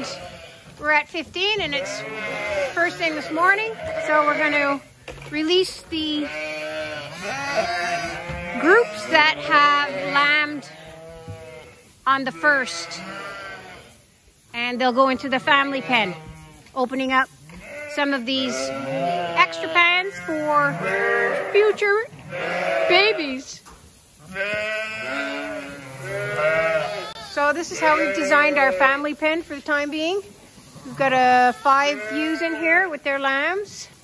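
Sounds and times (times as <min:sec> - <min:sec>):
sheep bleating: 0:00.0 - 0:00.6, 0:01.6 - 0:04.8, 0:06.0 - 0:14.0, 0:15.0 - 0:16.6, 0:17.5 - 0:23.5, 0:24.2 - 0:29.2, 0:30.8 - 0:33.0.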